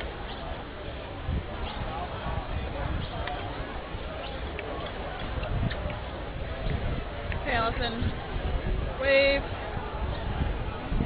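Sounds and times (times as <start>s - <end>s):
people chattering: 0.0s - 11.0s
steady low rumble: 0.0s - 11.0s.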